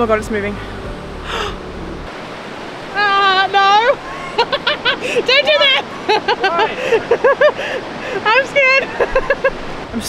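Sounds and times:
low rumble: 0.0 - 2.2
river rushing: 0.0 - 10.0
woman exclaiming: 3.0 - 6.8.

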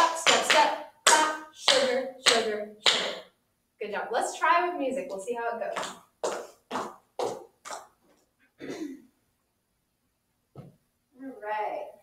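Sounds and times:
tap shoes striking hard floor: 5.8 - 8.0.

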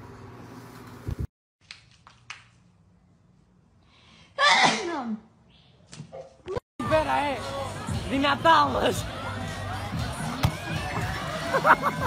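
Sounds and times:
person sneezing loudly: 4.4 - 5.0.

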